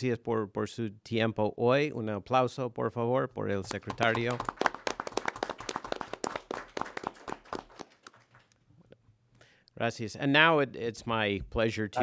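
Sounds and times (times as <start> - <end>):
audience applause: 3.9 - 8.5.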